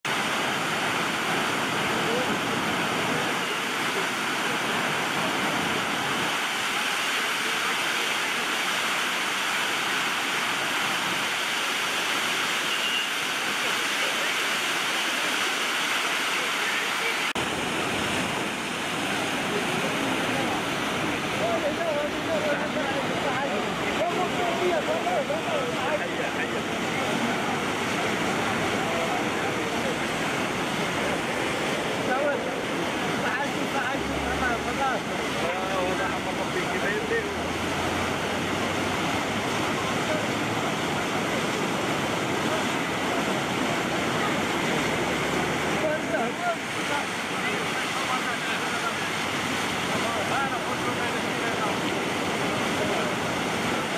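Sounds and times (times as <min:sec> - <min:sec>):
turbulent water rushing: 0:00.0 - 0:53.9
people's voices: 0:12.7 - 0:53.9.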